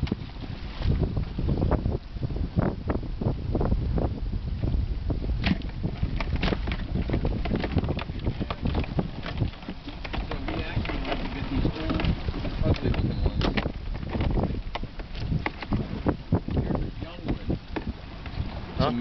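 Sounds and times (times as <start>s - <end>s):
wind buffeting microphone: 0.0s - 19.0s
crabs knocking in plastic cooler: 5.4s - 15.8s.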